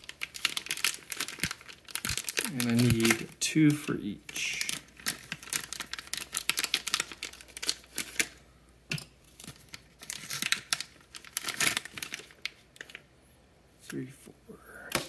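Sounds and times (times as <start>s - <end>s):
plastic packaging crinkling: 0.0s - 3.4s, 4.2s - 8.4s, 9.2s - 13.1s.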